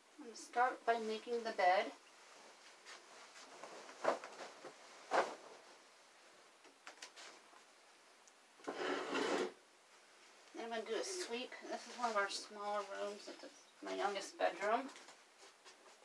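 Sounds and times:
bedding rustling: 0.6 - 8.0, 9.9 - 16.0.

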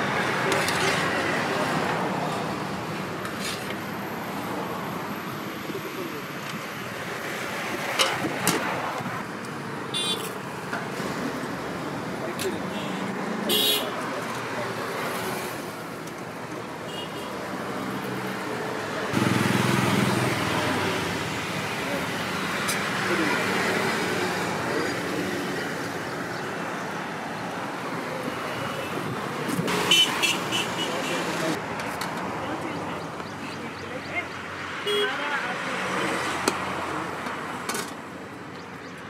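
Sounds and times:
vehicles passing: 0.0 - 39.0
car horns: 9.9 - 10.4, 12.7 - 14.0, 16.9 - 17.4, 29.7 - 31.5, 34.8 - 35.4.

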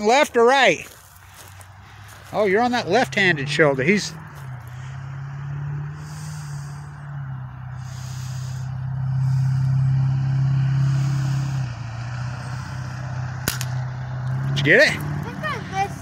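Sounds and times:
vehicle engine humming: 0.0 - 16.0.

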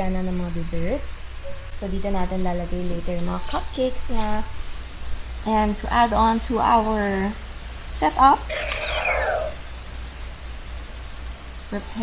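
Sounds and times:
toy saber swoosh: 8.5 - 9.6.

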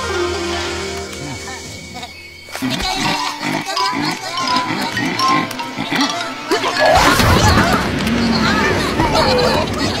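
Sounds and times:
background music: 0.0 - 10.0
cartoon animals vocalizing: 2.0 - 10.0.

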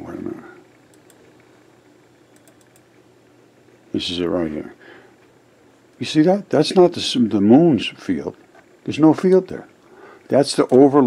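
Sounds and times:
man talking: 0.0 - 0.6, 3.9 - 4.8, 6.0 - 9.7, 10.3 - 11.0
soft computer mouse clicks: 0.9 - 1.5, 2.3 - 2.9.

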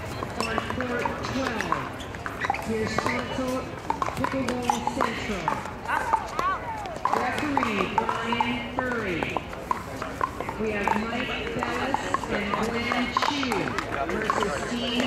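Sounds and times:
paddles hitting balls: 0.0 - 15.0
voices talking: 0.0 - 15.0.

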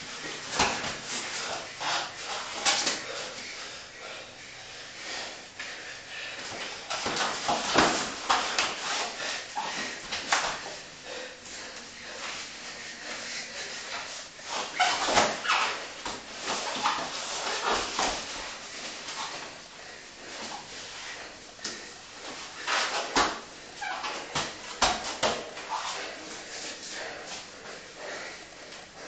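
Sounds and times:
people breathing hard and grunting: 0.3 - 14.7, 18.7 - 24.6, 25.3 - 29.0.

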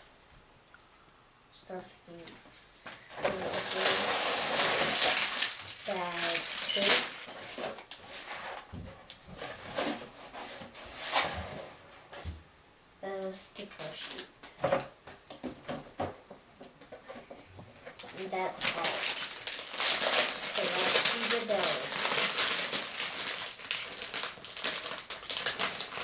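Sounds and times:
plastic bags crinkling: 3.0 - 8.0, 17.9 - 26.0
plastic pieces clicking: 3.3 - 8.0.

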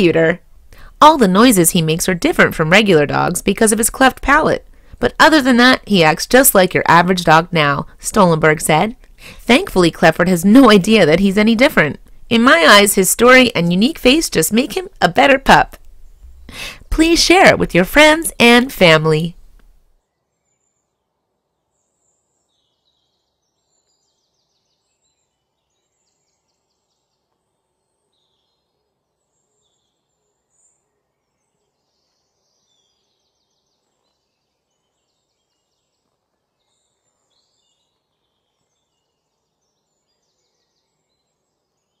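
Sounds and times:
bird chirps and trills: 17.2 - 42.0.

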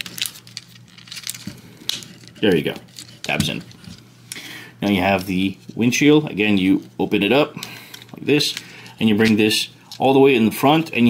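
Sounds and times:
plastic parts rubbing: 0.0 - 4.0.

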